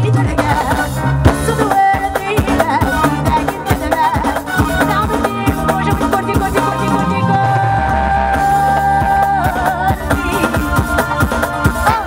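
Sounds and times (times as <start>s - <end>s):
electronic drum kit beat: 0.0s - 12.0s
woman singing into a microphone: 0.0s - 12.0s.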